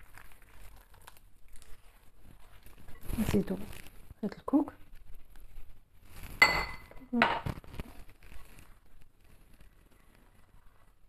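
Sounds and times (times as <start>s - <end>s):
glass clinking against ceramic bowl: 6.4s - 7.4s.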